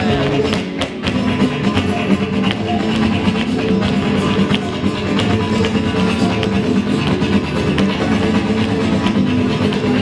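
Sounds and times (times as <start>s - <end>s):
flamenco guitar music: 0.0s - 10.0s.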